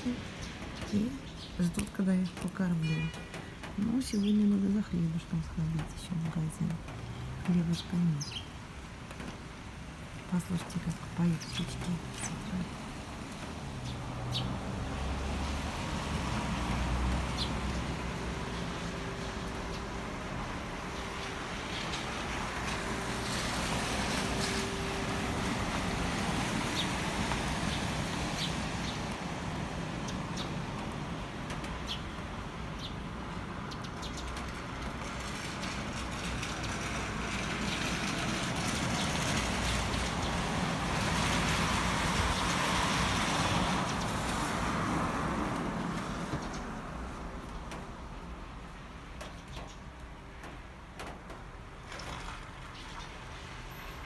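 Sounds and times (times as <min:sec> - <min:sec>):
passing car engines: 0:11.6 - 0:31.9, 0:34.3 - 0:47.5.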